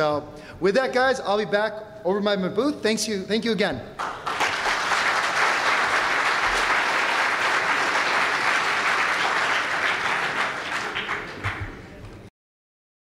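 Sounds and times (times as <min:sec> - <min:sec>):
audience applauding: 0:04.0 - 0:12.2.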